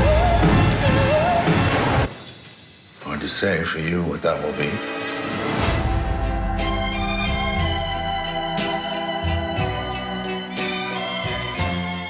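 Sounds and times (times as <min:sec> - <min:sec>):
glass jar shattering on floor: 0:02.1 - 0:03.0.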